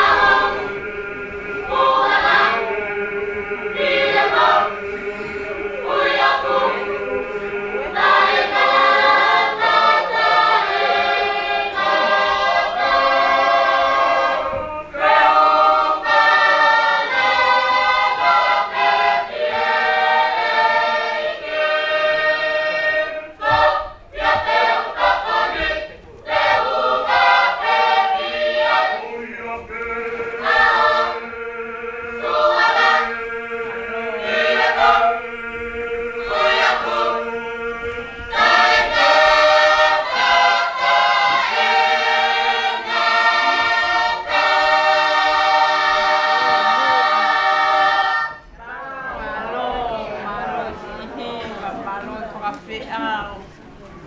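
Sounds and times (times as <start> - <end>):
choir singing a hymn: 0.0 - 53.5.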